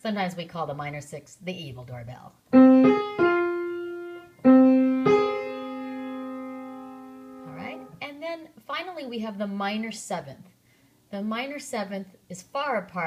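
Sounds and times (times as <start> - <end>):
piano two-note interval: 2.6 - 8.0.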